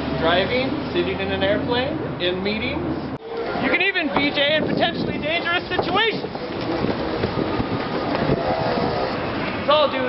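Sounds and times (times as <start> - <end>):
street rumble and hiss: 0.0 - 10.0.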